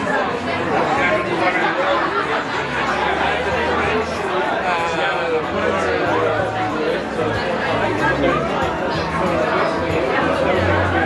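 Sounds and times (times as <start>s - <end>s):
chatter of many diners: 0.0s - 11.0s.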